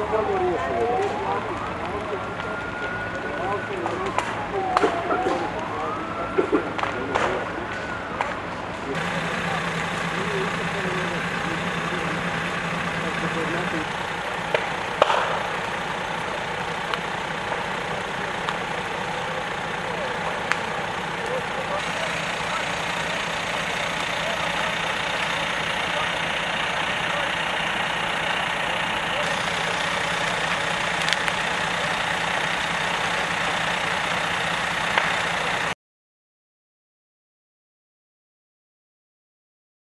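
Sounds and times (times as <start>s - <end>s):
fire engine idling: 0.0s - 35.8s
short sharp cracks: 14.0s - 23.0s.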